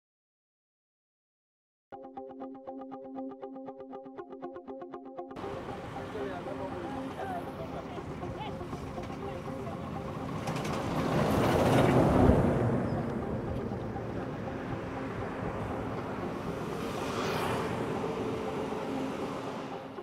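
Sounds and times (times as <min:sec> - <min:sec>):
heavy truck passing: 0:05.4 - 0:20.0
vehicle passing: 0:05.4 - 0:20.0.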